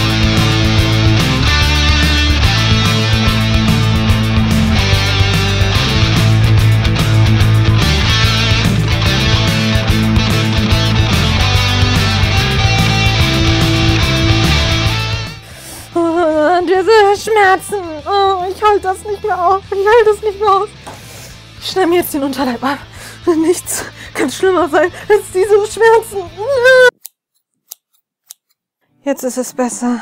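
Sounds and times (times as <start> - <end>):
rock guitar music: 0.0 - 23.3
scissors snipping: 26.9 - 28.6.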